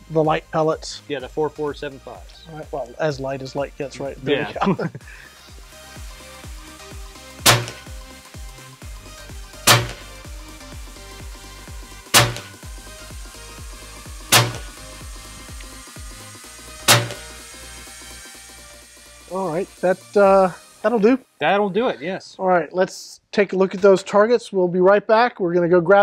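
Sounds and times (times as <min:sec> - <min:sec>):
background music: 0:00.0 - 0:22.9
air rifle shots: 0:07.4 - 0:08.0, 0:09.6 - 0:10.2, 0:12.1 - 0:12.6, 0:14.3 - 0:14.8, 0:16.8 - 0:17.5.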